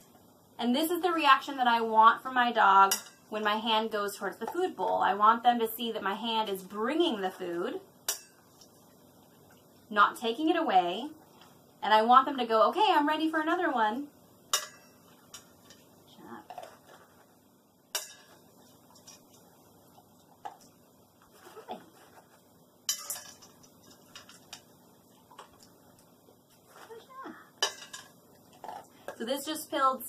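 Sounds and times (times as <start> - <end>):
bowl clinking and rattling: 22.9 - 24.7, 27.6 - 28.9.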